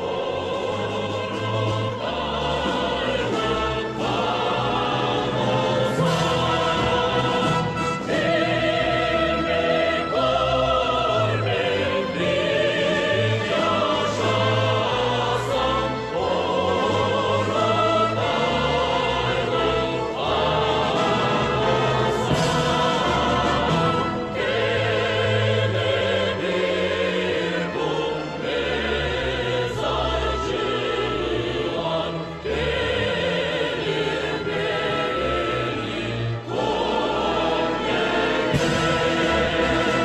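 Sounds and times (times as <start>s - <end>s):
choir singing: 0.0s - 40.0s
string orchestra: 0.0s - 40.0s.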